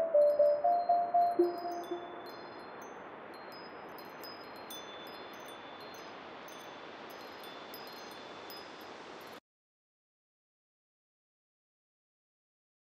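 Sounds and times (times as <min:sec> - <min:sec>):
high tinkling chimes: 0:00.0 - 0:09.4
soft wind-like hiss: 0:00.0 - 0:09.4.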